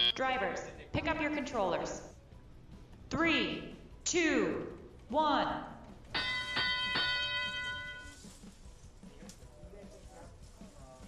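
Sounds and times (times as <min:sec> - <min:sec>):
bell ringing: 0:00.0 - 0:00.3, 0:06.2 - 0:08.3.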